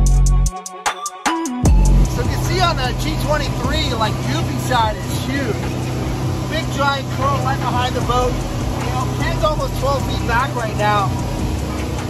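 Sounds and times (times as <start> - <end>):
boat engine droning: 1.7 - 12.0
rush of boat wake: 2.0 - 12.0
man talking: 2.1 - 5.7, 6.5 - 11.2.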